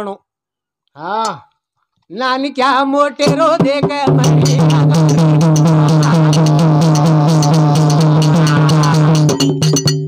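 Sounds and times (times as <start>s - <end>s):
hand drum beat: 3.2s - 10.0s
small brass hand cymbals: 4.4s - 10.0s.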